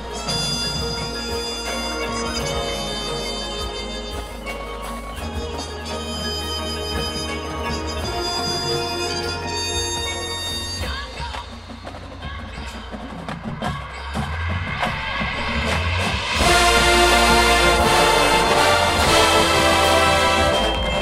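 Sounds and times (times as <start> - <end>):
marching band playing: 0.0 - 13.4, 14.2 - 21.0
scattered percussion hits: 11.3 - 21.0.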